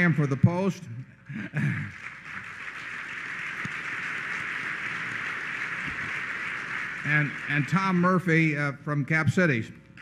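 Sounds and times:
audience applauding: 0:01.4 - 0:08.6.

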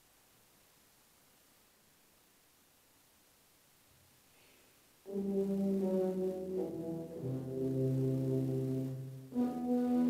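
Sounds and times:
low brass chords: 0:05.1 - 0:10.0.

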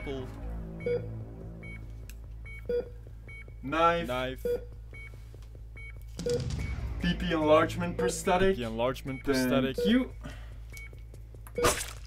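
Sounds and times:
patient monitor beep: 0:00.7 - 0:03.6, 0:04.4 - 0:06.8, 0:09.0 - 0:11.7.

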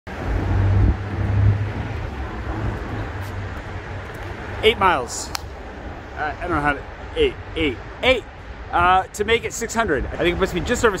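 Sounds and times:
traffic hum: 0:00.1 - 0:11.0
vehicle low rumble: 0:00.1 - 0:11.0.

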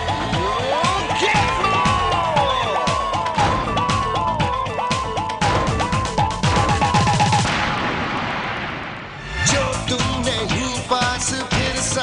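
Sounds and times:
drum roll: 0:00.3 - 0:08.2.

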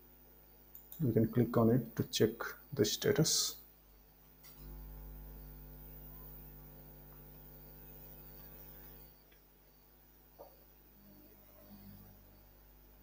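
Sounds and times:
electrical mains hum: 0:00.0 - 0:13.0.

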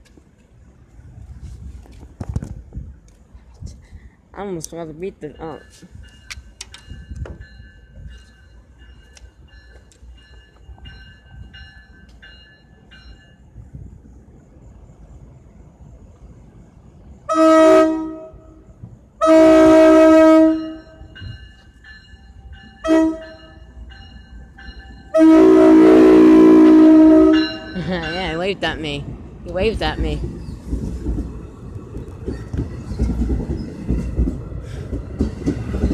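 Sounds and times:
crossing bell ringing: 0:04.8 - 0:13.6, 0:20.4 - 0:29.0
locomotive horn blasts: 0:17.3 - 0:18.6, 0:19.2 - 0:21.1, 0:22.8 - 0:23.6, 0:25.1 - 0:27.7.

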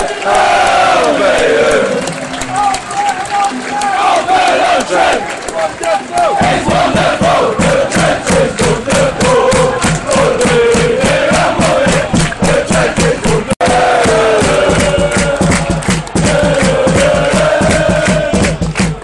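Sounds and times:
football crowd chanting: 0:00.0 - 0:19.0
rhythmic drum beat: 0:00.0 - 0:19.0.

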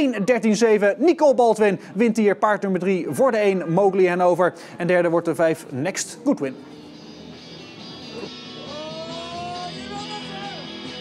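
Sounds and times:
guitar music with sliding melody: 0:06.6 - 0:11.0.

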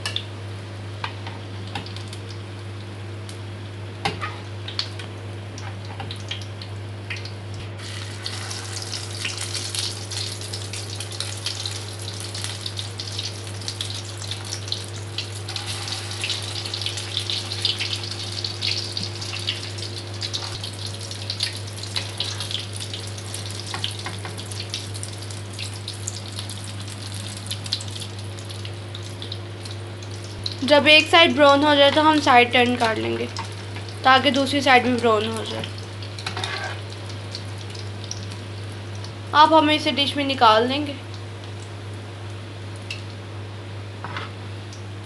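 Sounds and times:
food frying in hot oil: 0:00.0 - 0:45.0
low steady hum: 0:00.0 - 0:45.0.

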